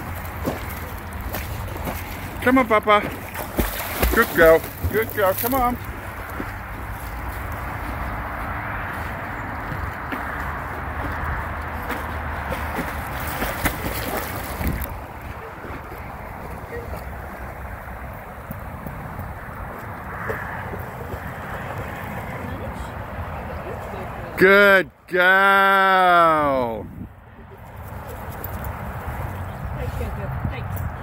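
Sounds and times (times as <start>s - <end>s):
dog splashing in water: 3.0s - 8.0s, 8.9s - 17.0s
wind rumbling on microphone: 5.8s - 23.4s, 26.8s - 31.0s
wind on microphone: 13.8s - 16.6s, 26.8s - 27.2s.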